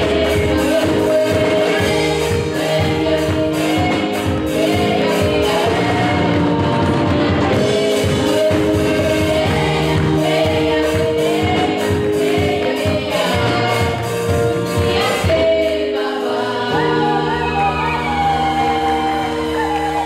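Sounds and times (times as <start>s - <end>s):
electric bass: 0.0s - 15.7s, 16.6s - 20.0s
drum kit: 0.0s - 20.0s
girls singing gospel: 0.0s - 20.0s.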